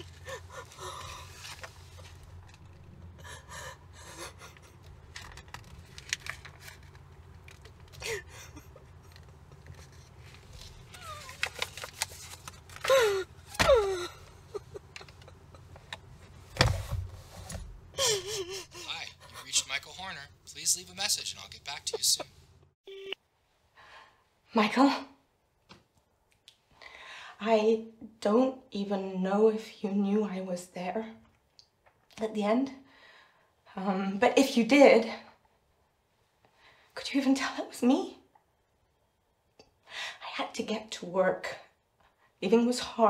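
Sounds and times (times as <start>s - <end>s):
woman crying: 0.0s - 1.4s, 3.2s - 4.8s, 7.9s - 9.0s, 12.8s - 15.8s, 18.0s - 19.4s, 22.9s - 23.2s
woman sobbing: 0.0s - 1.5s, 3.2s - 4.9s, 7.9s - 9.2s, 12.8s - 15.9s, 17.9s - 19.4s, 22.9s - 23.2s
low steady hum: 0.0s - 23.2s.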